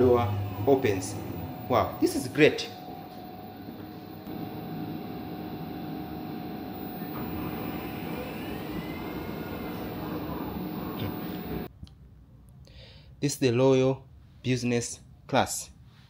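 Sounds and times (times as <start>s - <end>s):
faint rising and falling whine: 0.0s - 11.7s
faint steady tones: 0.0s - 11.7s
train carriage hum and rush: 0.0s - 11.7s.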